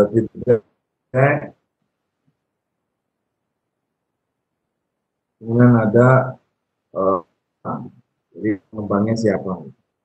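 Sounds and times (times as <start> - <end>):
man talking: 0.0 - 0.6, 1.2 - 1.6, 5.4 - 6.4, 7.0 - 9.8.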